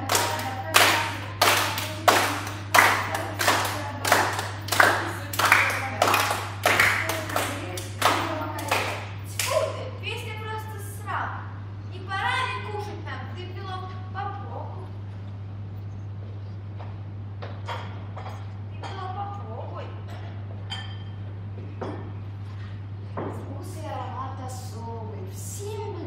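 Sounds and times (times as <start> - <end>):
hand-clapping in a steady beat: 0.0 - 9.7.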